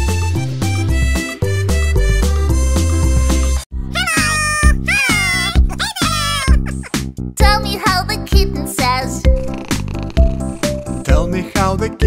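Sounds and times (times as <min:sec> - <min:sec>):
cat meowing: 0:04.0 - 0:06.8
children's song beat with bass: 0:04.0 - 0:09.3, 0:11.0 - 0:12.0.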